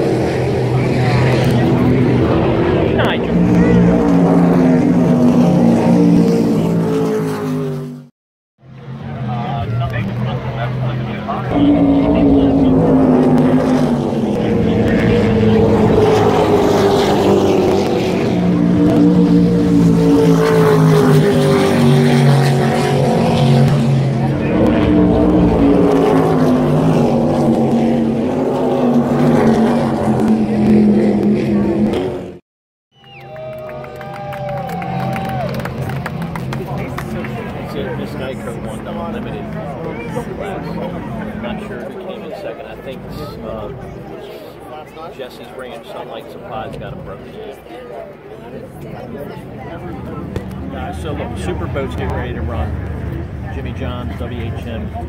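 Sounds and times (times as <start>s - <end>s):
powerboat engines droning: 0.0s - 32.4s, 33.0s - 55.0s.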